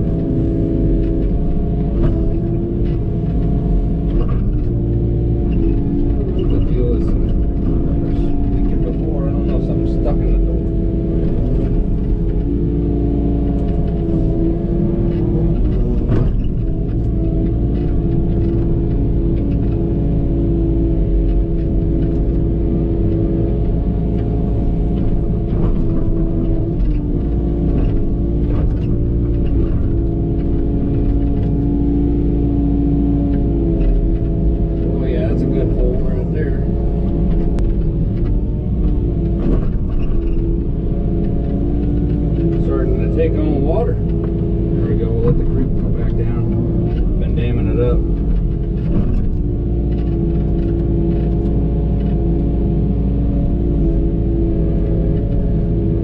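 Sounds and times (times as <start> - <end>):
excavator engine droning: 0.0 - 56.0.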